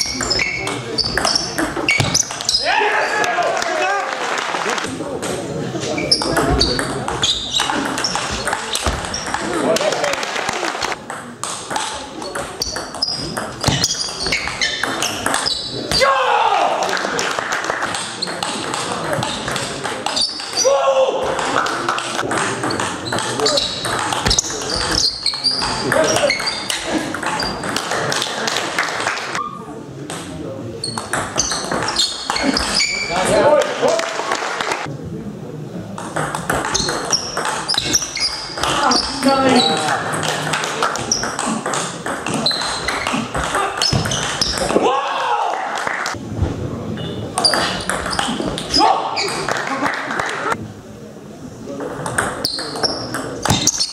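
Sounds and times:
shoes squeaking on floor: 0.0s - 2.7s, 5.8s - 9.5s, 12.2s - 16.0s, 20.1s - 20.6s, 22.6s - 27.8s, 30.8s - 33.3s, 36.7s - 40.0s, 42.2s - 44.7s, 47.0s - 49.5s, 52.4s - 53.9s.

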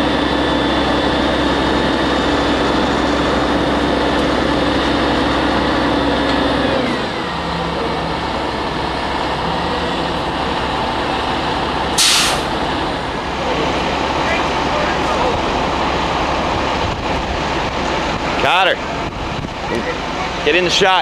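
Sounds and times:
truck diesel engine: 0.0s - 21.0s
air brake hiss: 12.0s - 12.5s.

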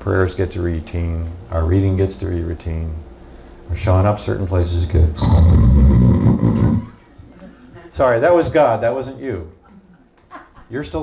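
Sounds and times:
man mock snoring: 5.2s - 7.0s.

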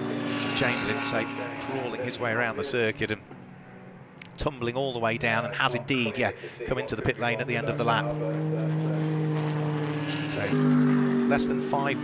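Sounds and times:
racing engine at steady revs: 0.0s - 4.6s, 7.0s - 12.0s.

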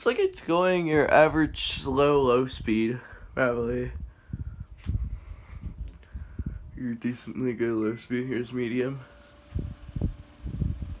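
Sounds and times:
breeze buffeting microphone: 0.0s - 11.0s
fan running: 0.0s - 11.0s.

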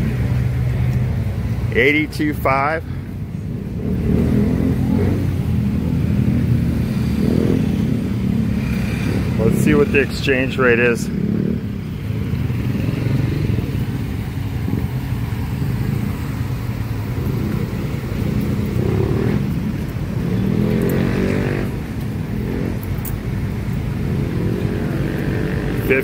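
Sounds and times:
engine passing by: 0.0s - 26.0s
motorcycle and car engines: 0.0s - 26.0s.

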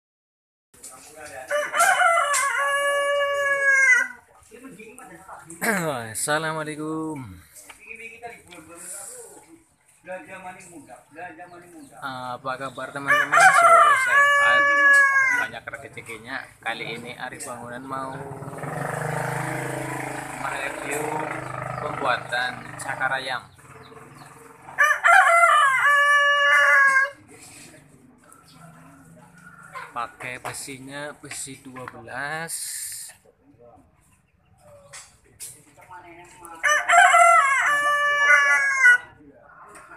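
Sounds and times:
rooster crowing: 1.5s - 4.2s, 13.0s - 15.5s, 24.7s - 27.2s, 36.6s - 39.2s.

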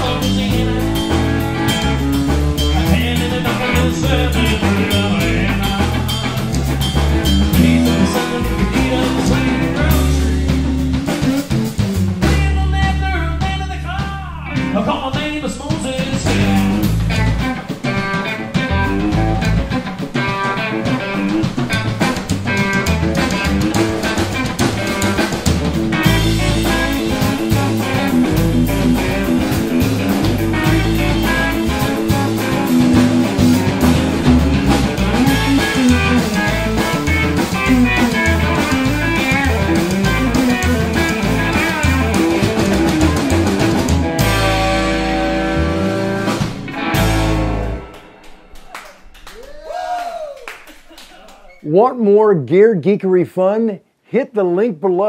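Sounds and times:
live band playing: 0.0s - 49.4s.

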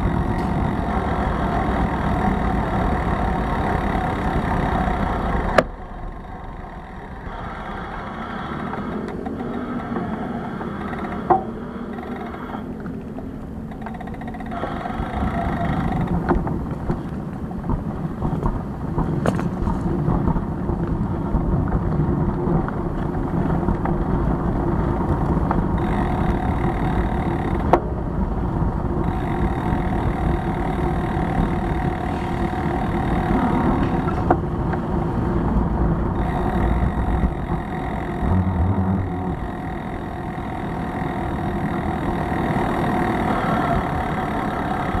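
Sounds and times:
city traffic: 0.0s - 45.0s
road and wind rumble: 0.0s - 45.0s.

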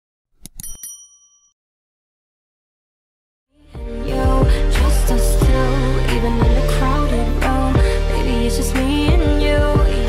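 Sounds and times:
bell ding: 0.5s - 1.6s.

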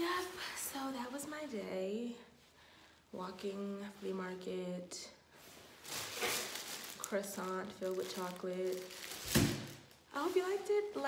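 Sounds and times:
plastic bag rustling: 5.4s - 11.0s.

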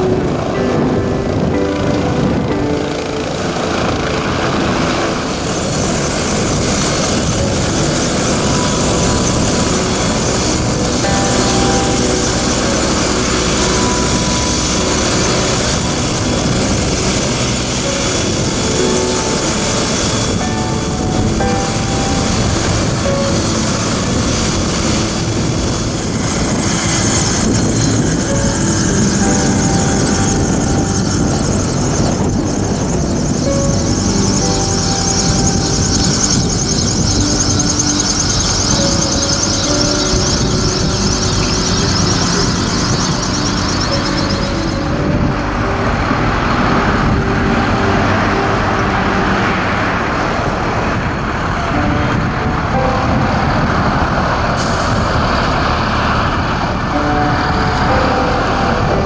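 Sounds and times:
helicopter engine and rotor: 0.0s - 44.9s
background music: 0.0s - 59.0s.

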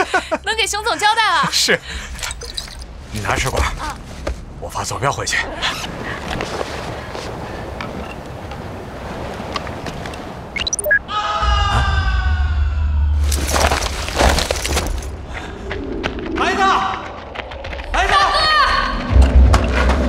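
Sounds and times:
man's long falling cry: 11.1s - 13.2s.

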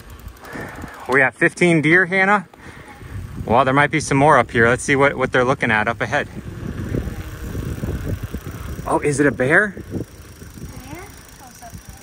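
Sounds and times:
wind on microphone: 2.6s - 12.0s.

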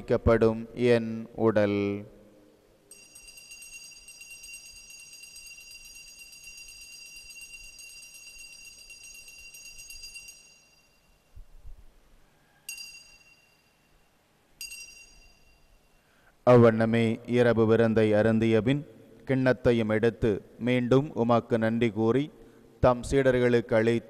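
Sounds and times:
altar bells jingling: 2.9s - 11.3s, 12.7s - 16.1s.

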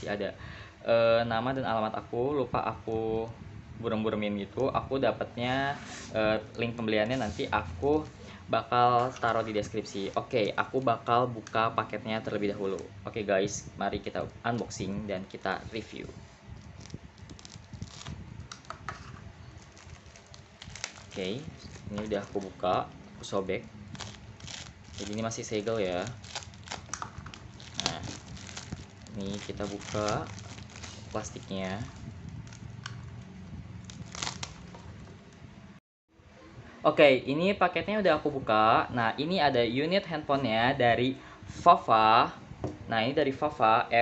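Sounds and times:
plastic bag and tape crinkling: 6.6s - 8.2s, 8.9s - 12.9s, 14.7s - 35.1s
plastic wrap rustling and tearing: 8.9s - 11.6s, 15.2s - 35.1s.

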